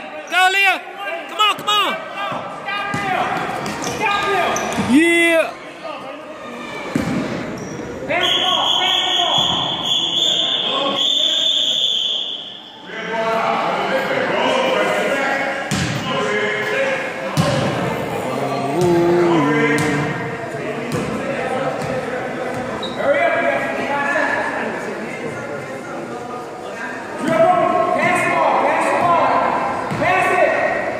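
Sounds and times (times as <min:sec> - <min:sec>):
chatter of children and spectators: 0:01.1 - 0:08.2, 0:12.9 - 0:29.9.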